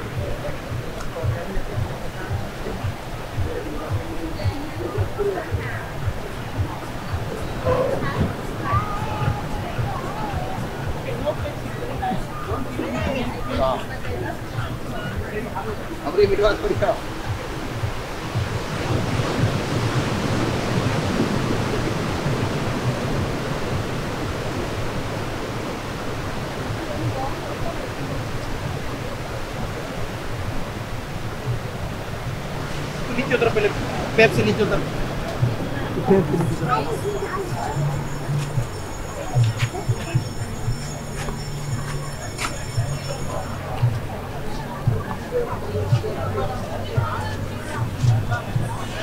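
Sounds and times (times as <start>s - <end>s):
low voices of passers-by: 0.0s - 49.0s
steady high-pitched tones: 0.0s - 49.0s
surf breaking on beach: 0.0s - 49.0s
wind rumbling on microphone: 0.0s - 49.0s
footsteps: 33.8s - 45.3s, 47.7s - 48.9s.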